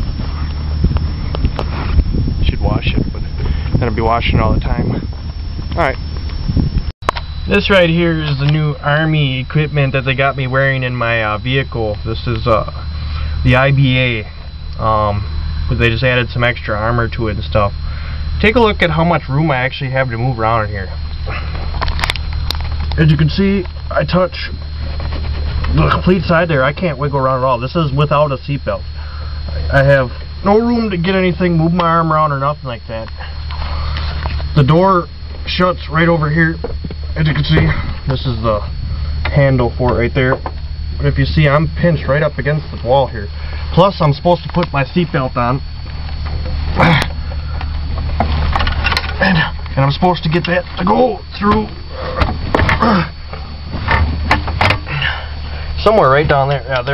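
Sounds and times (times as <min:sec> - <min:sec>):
low hum in vehicle cab: 0:00.0 - 0:56.9.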